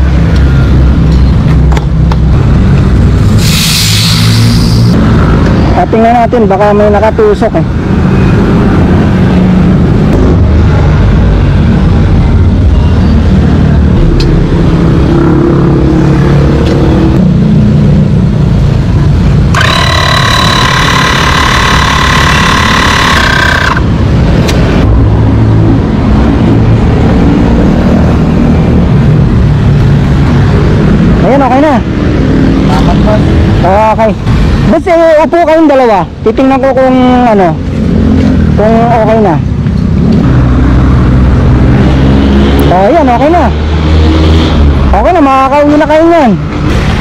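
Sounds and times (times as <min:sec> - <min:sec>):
harsh high-pitched noise: 0:03.3 - 0:05.0, 0:19.5 - 0:24.2
electric tyre inflator running: 0:19.5 - 0:23.9.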